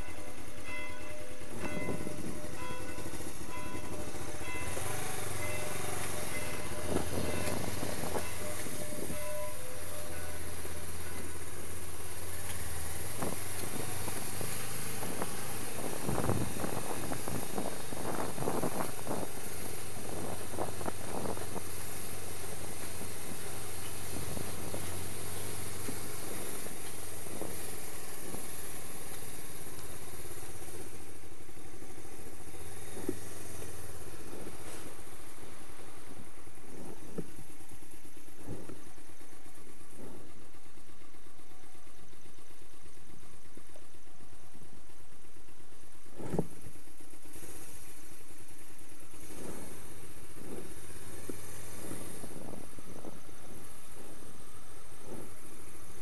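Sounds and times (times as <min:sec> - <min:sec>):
wind noise on microphone: 0:00.0 - 0:29.9, 0:32.4 - 0:37.5, 0:38.4 - 0:38.8, 0:46.1 - 0:46.7, 0:49.1 - 0:56.0
motorcycle engine running: 0:00.0 - 0:56.0.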